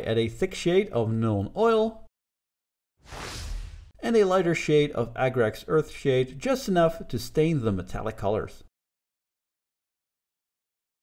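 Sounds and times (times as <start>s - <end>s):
whoosh: 3.0s - 4.0s.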